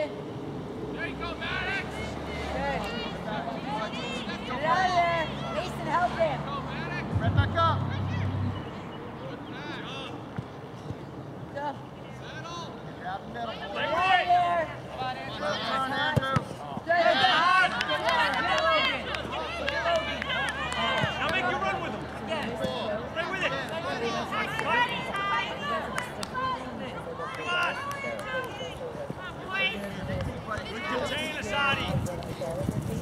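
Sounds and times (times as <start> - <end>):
voices shouting and calling out: 0.0 - 33.0.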